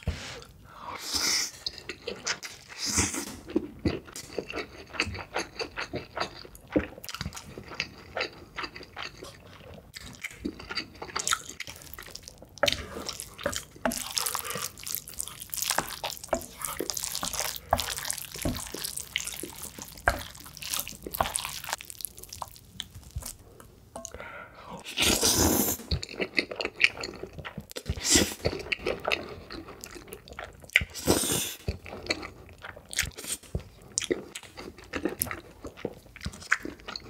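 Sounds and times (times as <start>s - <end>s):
mouth chewing noodles: 1.4s - 24.2s
chopsticks stirring sticky noodles: 11.1s - 23.4s
slurping noodles: 24.8s - 26.0s.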